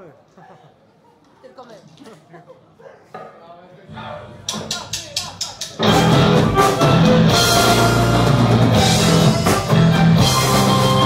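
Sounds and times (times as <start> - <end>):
faint crowd murmur: 0.0 - 11.0
full rock band playing loudly: 5.7 - 11.0.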